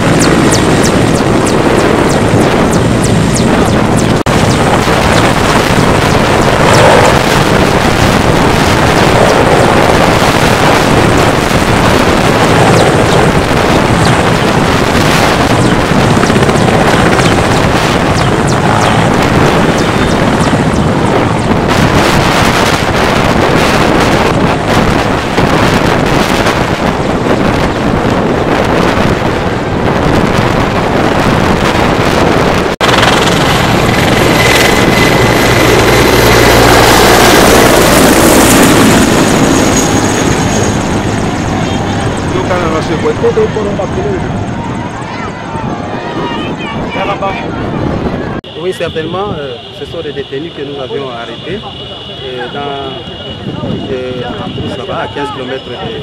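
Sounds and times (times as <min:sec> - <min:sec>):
helicopter rotor and turbines: 0:00.0 - 0:56.0
wind rumble on microphone: 0:00.0 - 0:56.0.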